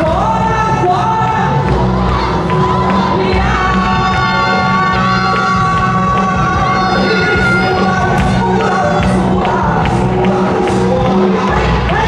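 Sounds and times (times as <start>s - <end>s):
dance music over loudspeakers: 0.0s - 12.0s
dancers shouting calls: 1.8s - 9.8s.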